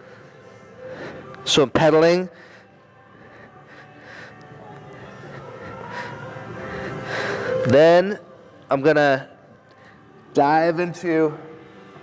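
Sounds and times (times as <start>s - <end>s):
man breathing: 0.0s - 1.5s, 2.3s - 7.7s.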